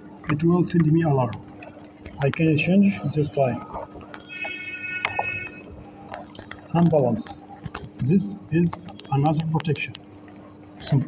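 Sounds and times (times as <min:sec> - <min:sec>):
low electrical hum: 0:00.0 - 0:11.0
high electronic tone: 0:02.6 - 0:06.0.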